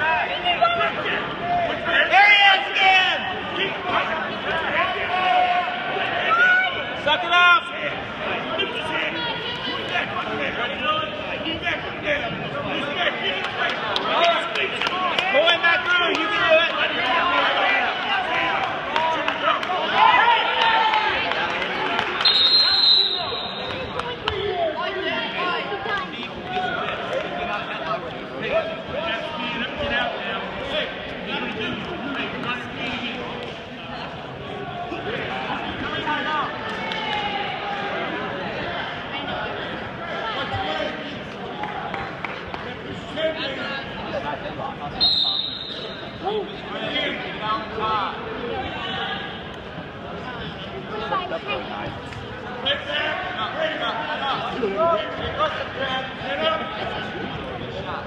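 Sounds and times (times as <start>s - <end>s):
people shouting and talking: 0.0s - 58.0s.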